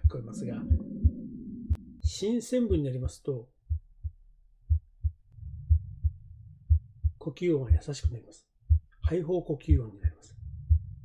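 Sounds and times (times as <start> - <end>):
heartbeat lub-dub: 0.0 - 11.0.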